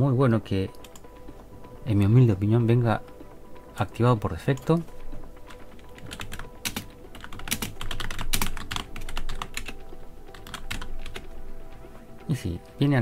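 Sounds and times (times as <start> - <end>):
typing on computer keyboard: 5.5 - 11.3.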